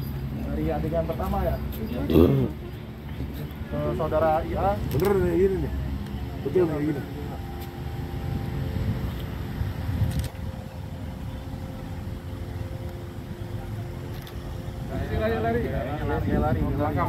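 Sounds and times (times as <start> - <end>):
engine rumble: 0.0 - 17.0.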